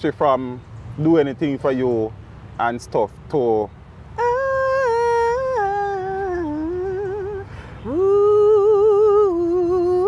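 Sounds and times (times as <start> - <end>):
woman singing unaccompanied: 4.2 - 10.0.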